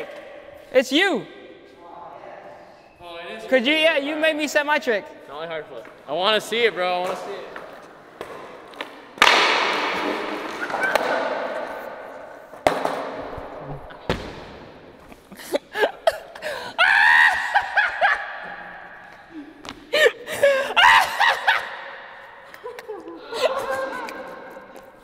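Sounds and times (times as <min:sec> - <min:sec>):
people laughing: 0:17.4 - 0:18.7, 0:22.5 - 0:25.0.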